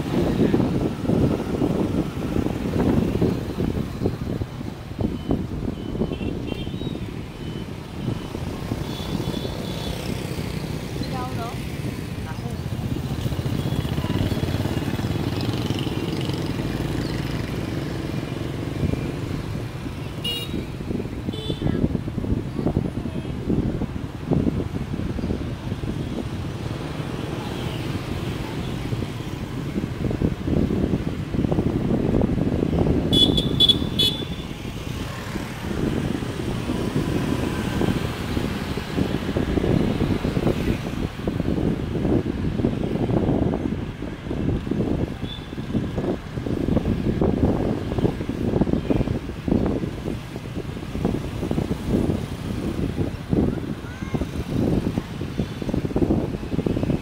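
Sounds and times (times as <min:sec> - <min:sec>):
motorbike engines running: 0:00.0 - 0:57.0
wind buffeting microphone: 0:00.0 - 0:57.0.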